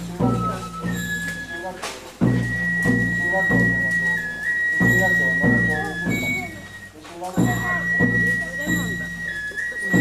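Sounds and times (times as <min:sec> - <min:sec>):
high whistle-like tone: 0:00.2 - 0:10.0.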